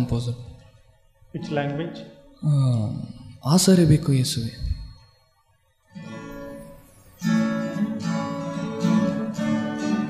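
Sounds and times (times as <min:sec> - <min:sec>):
acoustic guitar strumming: 0:05.9 - 0:10.0.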